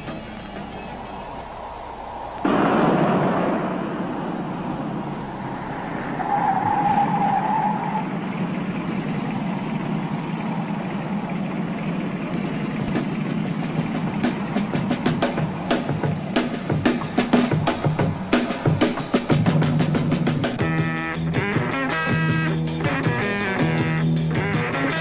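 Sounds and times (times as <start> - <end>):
motor vehicle running: 0.0 - 25.0.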